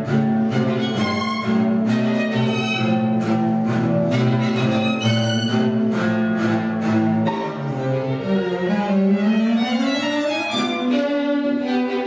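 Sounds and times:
double bass bowed low note: 0.0 - 9.6
violin: 0.0 - 12.0.

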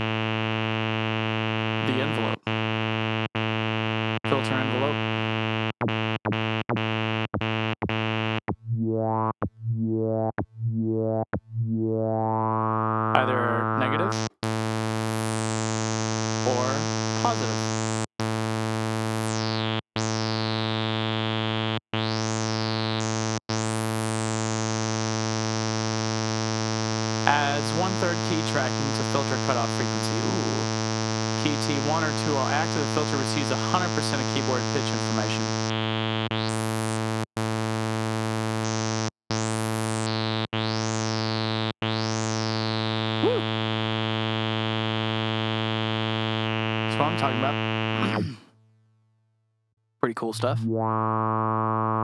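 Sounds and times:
synth bass notes with filter sweep: 1.6 - 21.2, 27.0 - 43.8, 46.8 - 48.4, 50.4 - 52.0.

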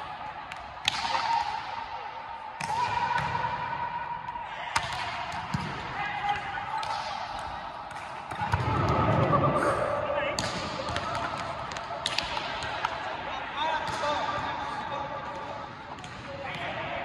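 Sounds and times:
players' voices: 0.0 - 17.0
volleyball slaps on hard court: 0.5 - 1.7, 2.6 - 3.6, 4.7 - 9.2, 10.4 - 13.0.

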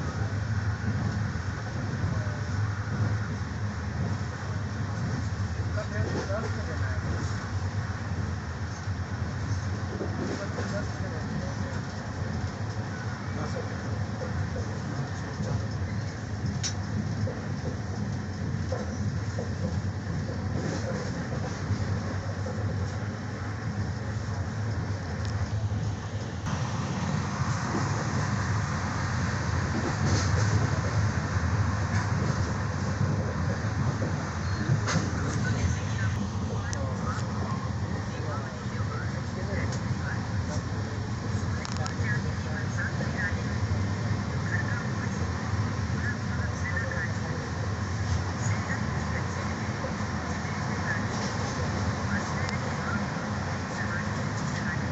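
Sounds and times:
train wheels rumbling on rails: 0.0 - 54.9.

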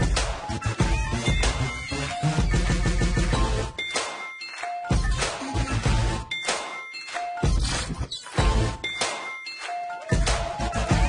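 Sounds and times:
bell-like dings and clangs: 1.2 - 11.0.

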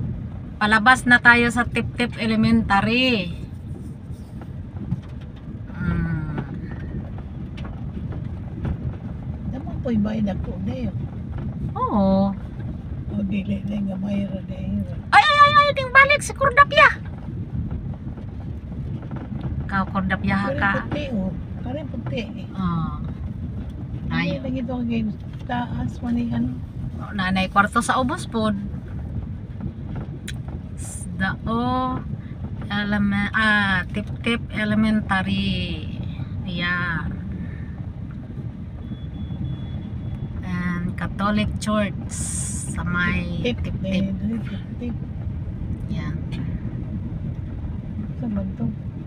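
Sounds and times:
car engine and road rumble: 0.0 - 49.0.

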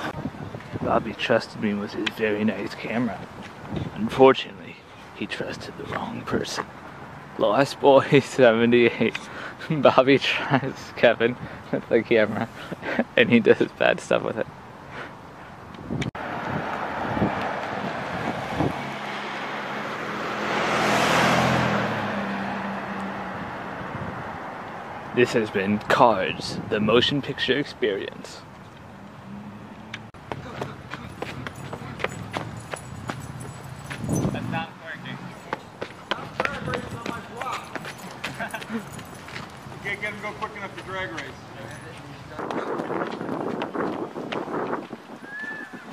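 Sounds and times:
car driving past: 16.2 - 25.1.

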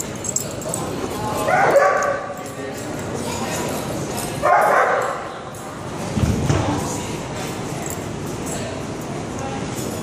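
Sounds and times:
dogs barking and yipping: 1.4 - 2.4, 4.4 - 5.3.

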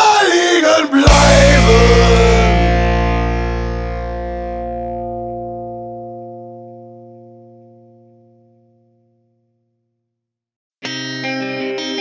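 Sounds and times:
distorted electric guitar chord: 1.1 - 9.4.

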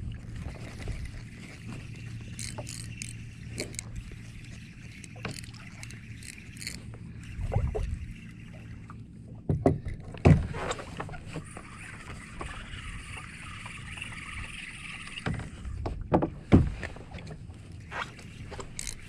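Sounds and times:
water lapping against kayak hull: 0.0 - 19.0
fishing reel clicks: 2.2 - 6.9, 18.6 - 19.0.

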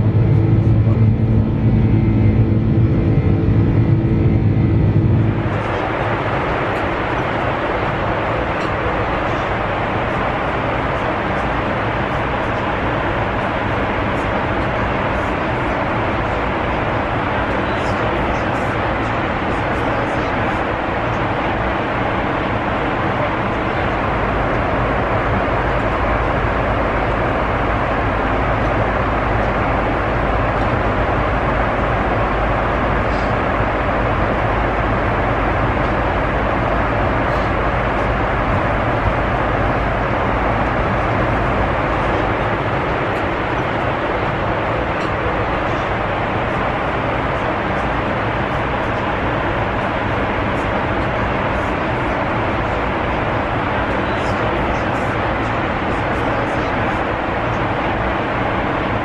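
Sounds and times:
low hum: 0.0 - 54.5
airplane cabin rush: 0.0 - 59.0.

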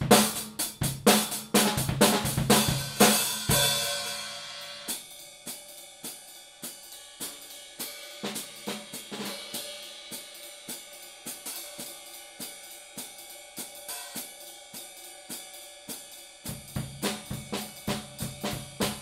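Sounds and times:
drum kit groove: 0.0 - 19.0
hi-hats played with sticks: 0.0 - 19.0.

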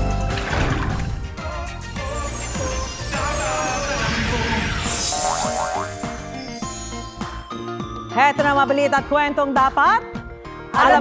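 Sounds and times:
jingle music: 1.4 - 10.2
rising chirps: 1.8 - 8.8.

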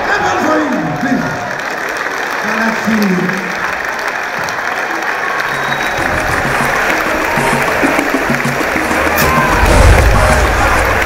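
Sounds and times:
audience applauding: 0.0 - 11.0
music with repeating bass line: 6.0 - 11.0.

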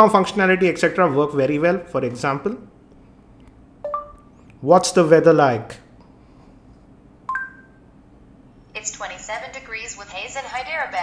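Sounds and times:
short electronic beep: 3.9 - 4.2.

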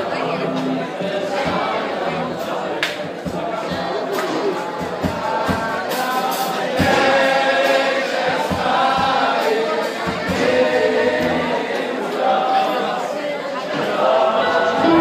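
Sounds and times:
live band music: 0.0 - 3.3, 9.4 - 12.0, 14.7 - 15.0
crowd of men singing: 0.5 - 15.0.

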